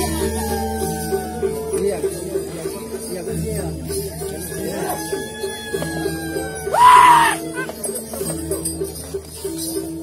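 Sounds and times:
gamelan music: 0.0s - 10.0s
person screaming: 6.0s - 7.7s.

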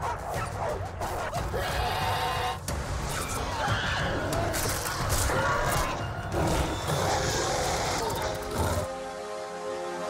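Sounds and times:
music: 0.0s - 10.0s
beasts yelping and snarling: 0.1s - 8.9s.

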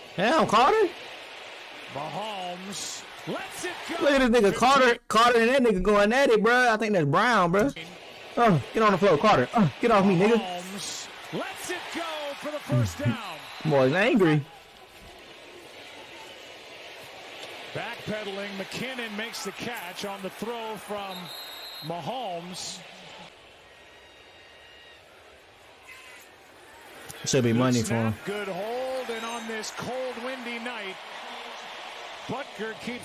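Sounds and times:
man speaking indistinctly: 2.0s - 7.8s, 8.4s - 14.4s, 27.3s - 30.9s
faint crowd noise: 7.7s - 33.0s.

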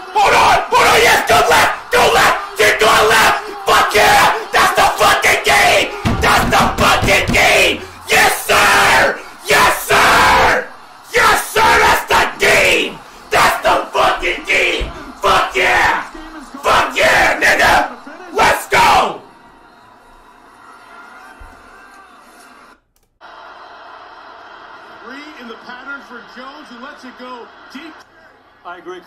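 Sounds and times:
man shouting excitedly: 0.0s - 19.2s
man yelling and screaming: 0.0s - 19.2s.

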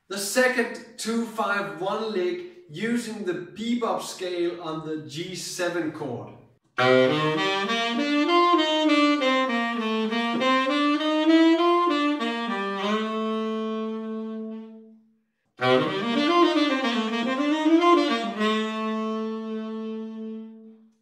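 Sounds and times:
tenor saxophone playing bebop lick: 6.8s - 21.0s.

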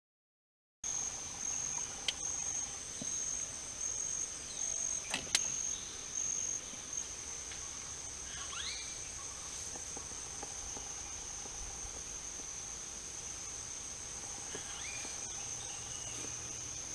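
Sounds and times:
insect chorus: 0.8s - 16.9s.

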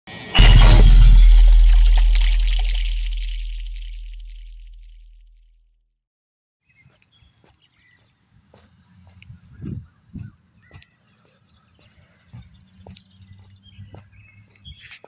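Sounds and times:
heavy boom with bright crash: 0.1s - 4.9s.

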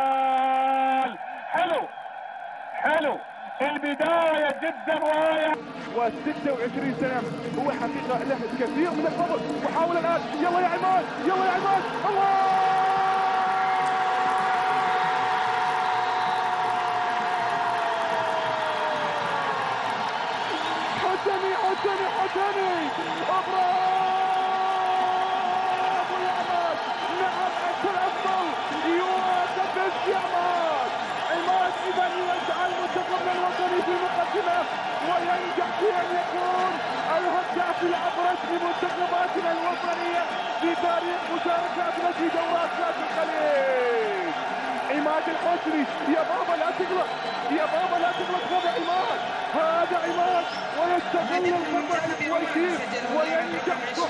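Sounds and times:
stadium crowd cheering: 0.0s - 54.0s.

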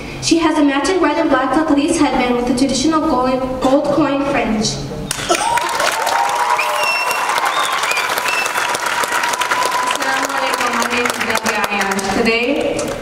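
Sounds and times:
audience clapping: 5.1s - 13.0s.

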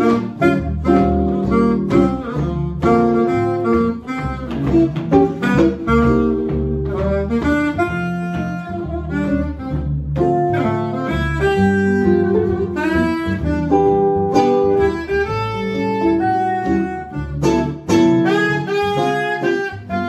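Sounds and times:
guitar rhythm: 0.0s - 20.0s
saxophone melody: 0.0s - 20.0s
upright bass: 0.0s - 20.0s.

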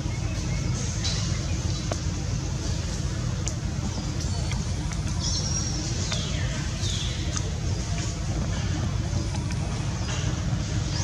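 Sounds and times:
low rumbling noise: 0.0s - 11.0s.

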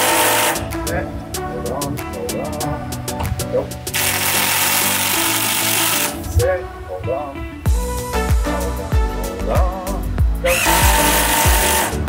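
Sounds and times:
power tool whining: 0.0s - 0.7s, 3.9s - 6.2s, 10.4s - 12.0s
background music with beat: 0.0s - 12.0s.

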